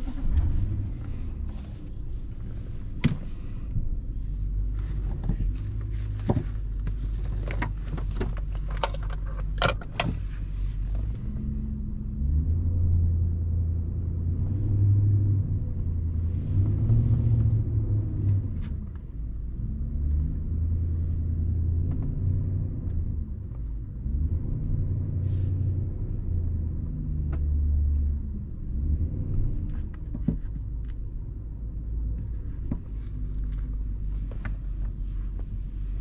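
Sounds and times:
car engine revving while driving: 10.8s - 29.9s.

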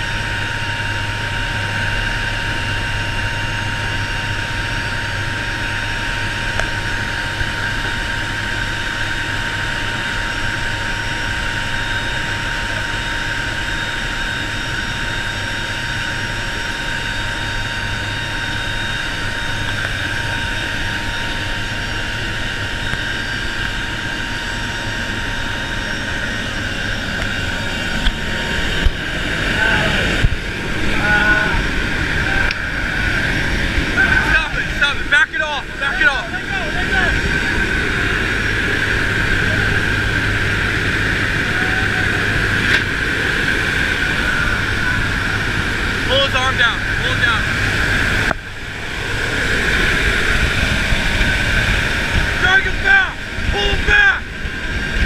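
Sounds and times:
turboprop engines droning: 0.0s - 55.0s.

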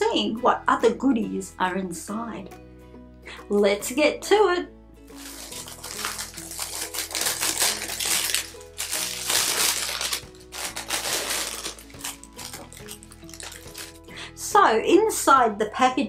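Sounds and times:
background music: 0.0s - 16.0s
plastic packaging crinkling: 5.2s - 14.1s.

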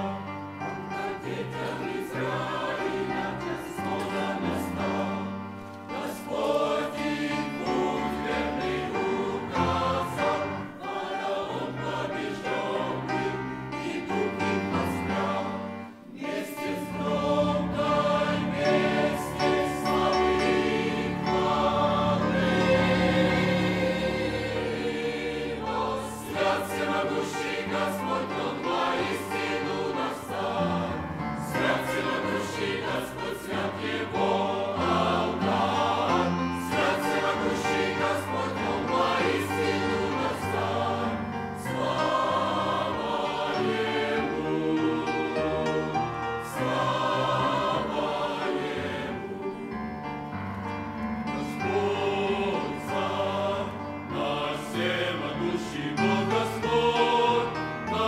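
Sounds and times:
choir singing a hymn: 0.0s - 58.0s
grand piano: 0.0s - 58.0s.

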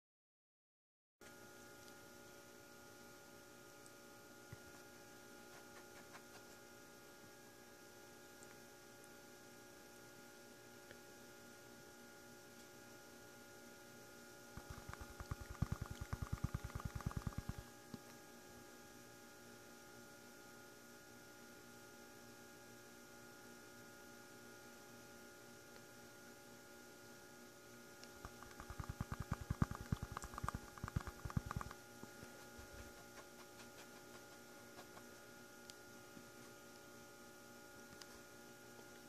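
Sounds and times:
electrical hum: 1.2s - 19.9s, 24.8s - 39.0s.

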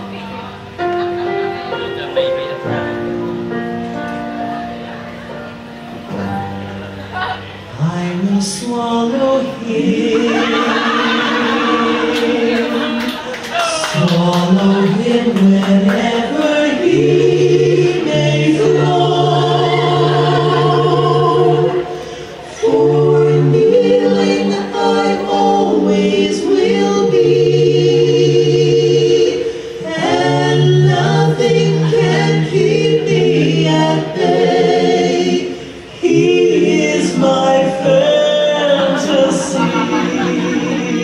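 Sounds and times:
choir singing in harmony: 0.0s - 41.0s.

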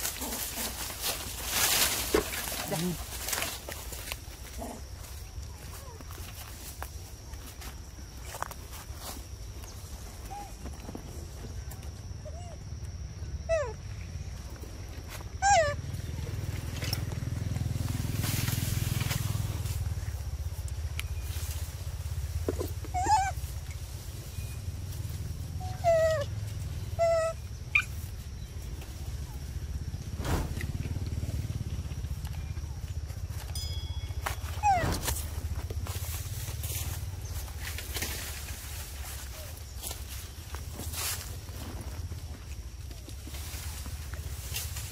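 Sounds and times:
macaque squeaky calls: 15.4s - 15.8s, 22.6s - 23.4s, 25.6s - 26.3s, 27.0s - 28.0s, 34.6s - 35.1s
low rumble: 28.4s - 39.1s.

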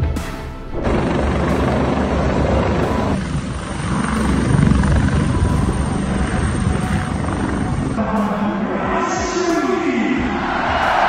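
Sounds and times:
helicopter rotor and engines: 0.7s - 8.3s.

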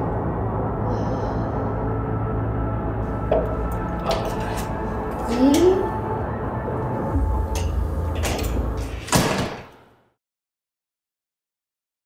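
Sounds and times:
glass door banging shut: 7.6s - 9.7s.

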